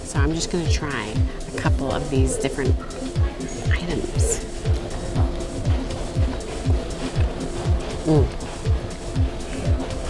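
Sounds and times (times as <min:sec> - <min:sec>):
steady bass drum beat: 0:00.0 - 0:10.0
sustained synth tones: 0:00.1 - 0:10.0.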